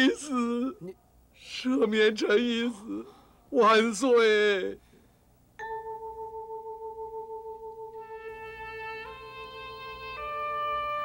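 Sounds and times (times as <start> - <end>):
sustained wavering tone: 5.6 - 10.4.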